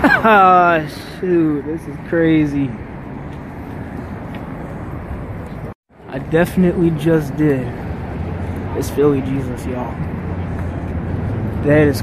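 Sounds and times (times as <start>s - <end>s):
city traffic rumble: 0.0s - 12.0s.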